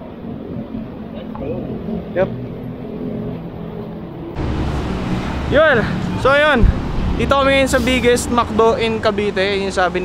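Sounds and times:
low steady rumble: 0.0 - 8.9.

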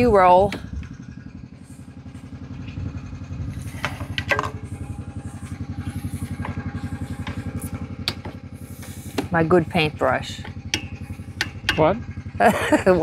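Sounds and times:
engine idling: 0.0 - 13.0.

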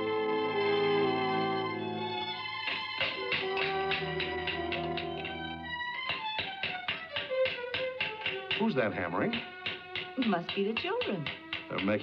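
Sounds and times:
background music with held notes: 0.0 - 12.0
rapid hammer taps: 2.6 - 12.0.

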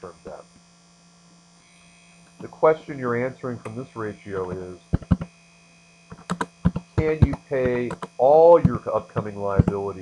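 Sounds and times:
mains hum: 0.0 - 10.0
keyboard typing: 4.5 - 5.3, 6.1 - 9.8.

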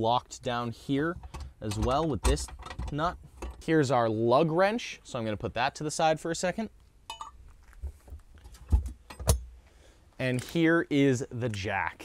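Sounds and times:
clicks and knocks of metal tools: 1.2 - 3.7, 7.1 - 7.4, 8.4 - 9.5
metallic clink: 7.1 - 7.4.

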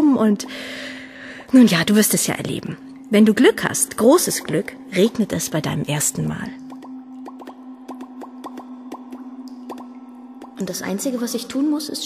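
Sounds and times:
water drops plopping: 0.3 - 11.1
low droning tone: 2.2 - 12.0.

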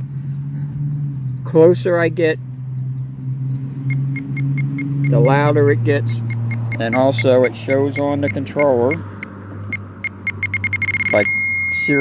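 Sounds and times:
steady low hum: 0.0 - 12.0
pinpointer beeping: 3.9 - 12.0.

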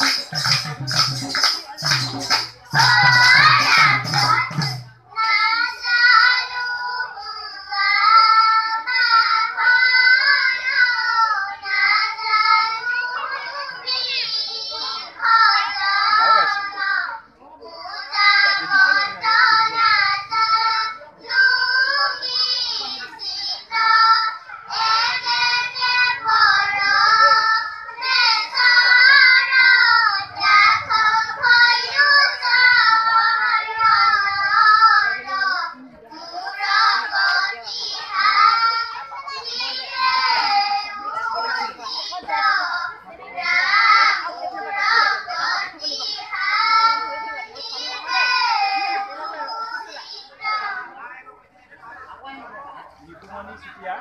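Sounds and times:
children singing together: 0.0 - 50.9.

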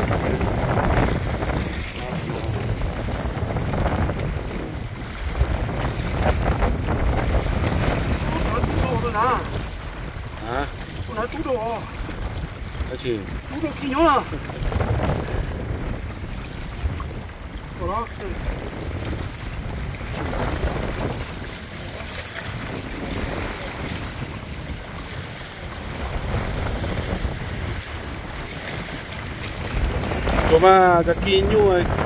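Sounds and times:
small waves lapping rocks: 0.0 - 32.0
wind buffeting microphone: 0.0 - 32.0.

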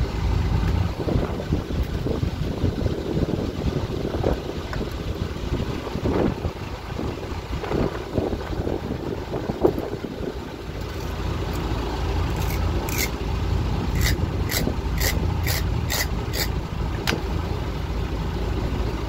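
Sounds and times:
low steady rumble: 0.0 - 19.0
wind buffeting microphone: 0.7 - 11.5.

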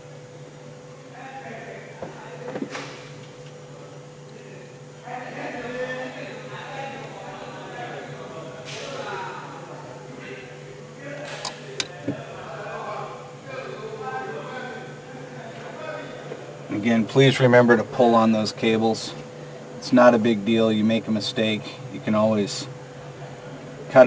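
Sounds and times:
steady hum: 0.0 - 24.0.

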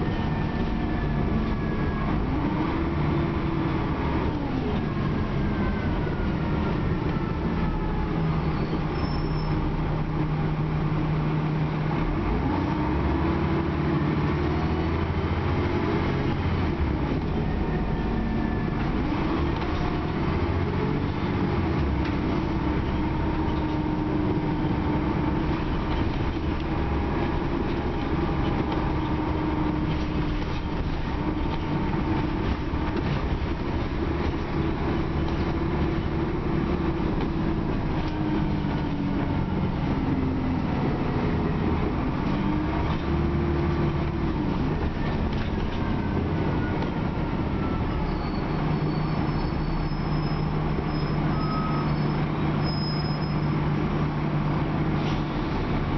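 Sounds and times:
bus engine and road rumble: 0.0 - 55.9.

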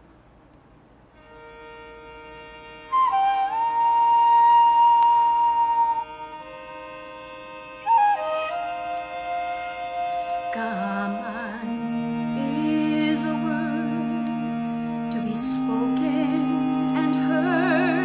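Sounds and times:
melody of long held notes: 1.0 - 18.0
sustained chords: 1.0 - 18.0.

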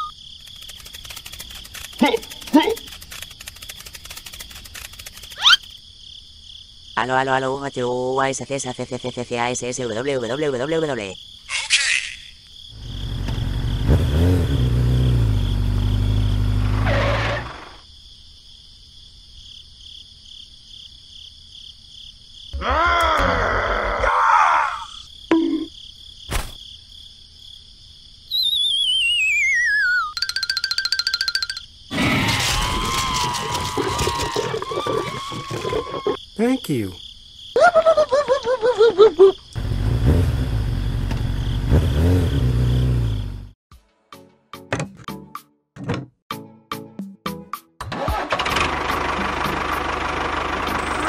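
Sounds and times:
rapid rattle: 0.4 - 5.7
squeaky warbling character voices: 5.3 - 5.7, 11.5 - 12.4
cartoon sound effects: 5.4 - 5.6, 28.4 - 33.2
falling whistle: 28.3 - 30.2.

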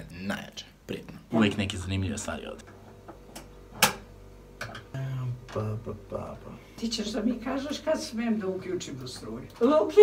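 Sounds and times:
sharp clicks from appliance: 3.3 - 4.9.

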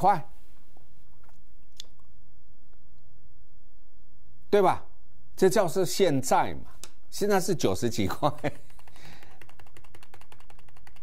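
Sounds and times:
rapid plastic clicks: 8.6 - 11.0.

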